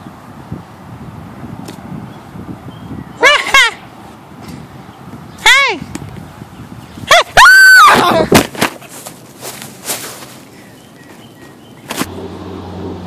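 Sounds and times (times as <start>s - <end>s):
rustling: 8.0s - 12.1s.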